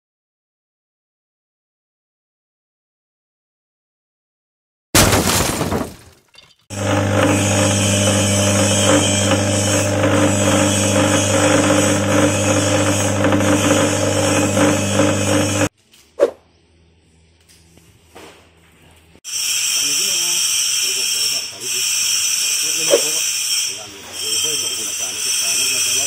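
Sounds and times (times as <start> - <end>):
electric grinder motor hum: 6.7 - 15.7.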